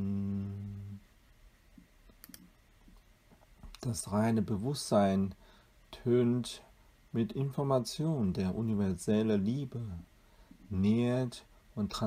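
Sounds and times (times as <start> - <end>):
person speaking: 3.6 - 12.0.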